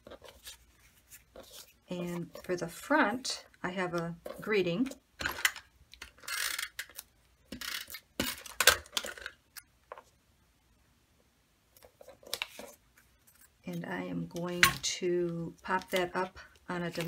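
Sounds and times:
paper rustling: 0.0 - 2.7, 11.8 - 13.5.

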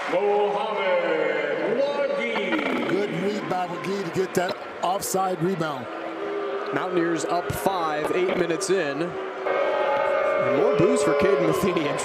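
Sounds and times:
man commentating: 0.0 - 5.9, 10.4 - 12.0
arena crowd noise: 0.0 - 12.0.

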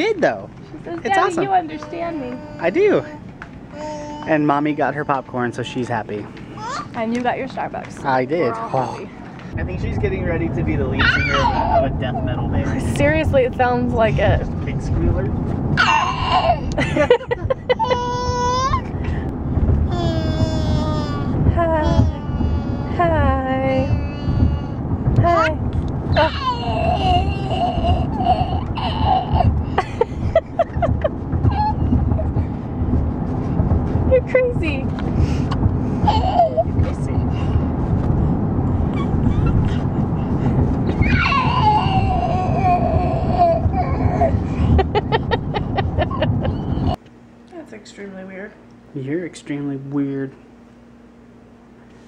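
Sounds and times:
car road rumble: 0.0 - 47.0
toddler squealing growly calls: 11.0 - 11.9, 15.8 - 16.6, 26.2 - 29.5, 31.5 - 32.0, 36.0 - 36.7, 38.9 - 39.8, 40.9 - 44.4.

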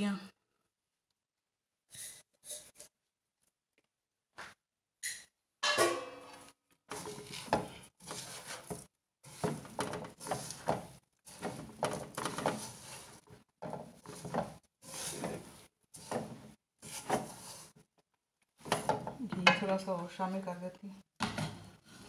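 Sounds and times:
spatula scraping grainy mixture in pan: 6.9 - 17.8.

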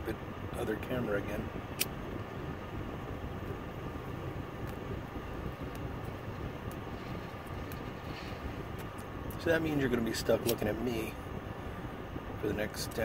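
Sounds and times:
car cabin hum and hiss: 0.0 - 13.0.

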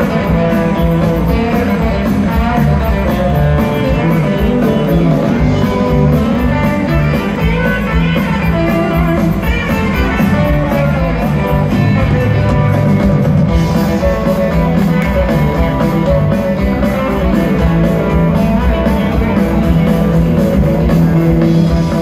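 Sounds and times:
bass guitar: 0.0 - 22.0
drums: 0.0 - 22.0
electric guitars: 0.0 - 22.0.

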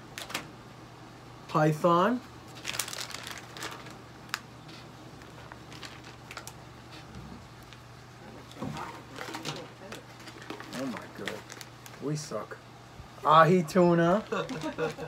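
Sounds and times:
low steady hum: 0.0 - 15.0
plastic packet crinkling: 2.5 - 4.5, 5.2 - 6.6, 9.0 - 12.1, 14.2 - 15.0.

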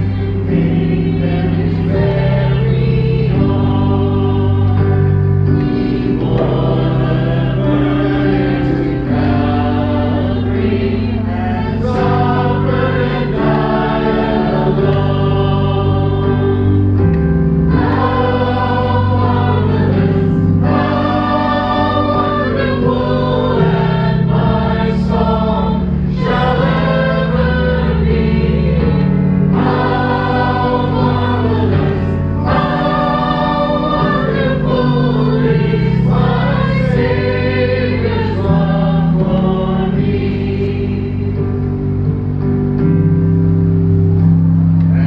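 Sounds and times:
group singing worship song: 0.0 - 42.5
sustained keyboard chords: 0.0 - 45.0.

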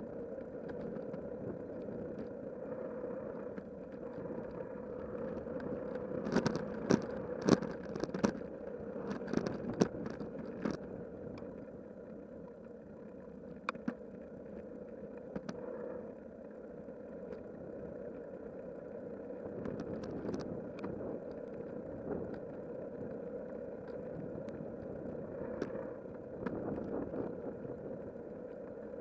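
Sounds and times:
bike clicks and rattles: 3.4 - 11.6, 19.6 - 24.6.

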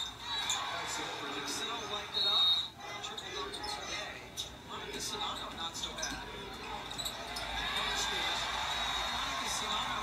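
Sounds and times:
arena crowd noise: 0.0 - 4.1, 6.1 - 10.0
faint commentary: 0.0 - 10.0.

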